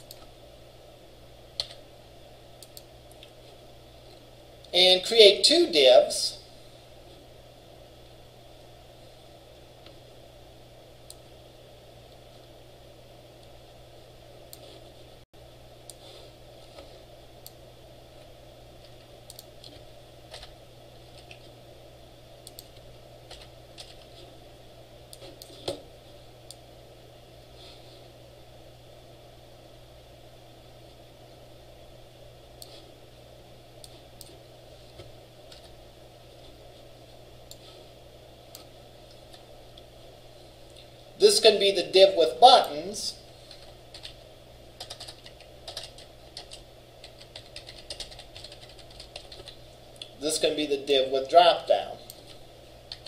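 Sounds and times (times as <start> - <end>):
steady low hum: 0.0 - 53.0
computer keyboard typing: 1.6 - 1.8, 19.0 - 20.6, 22.5 - 24.1, 43.5 - 44.2, 44.8 - 49.6.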